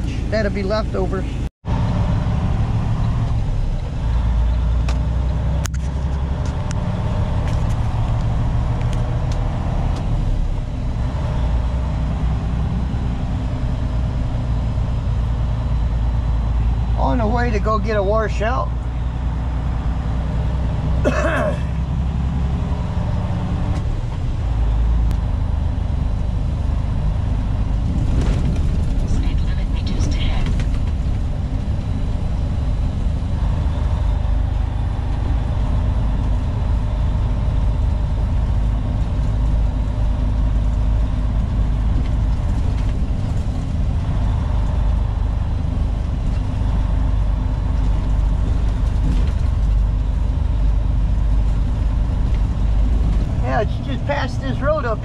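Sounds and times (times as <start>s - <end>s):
road noise: 0.0s - 55.0s
truck diesel engine rumble: 0.0s - 55.0s.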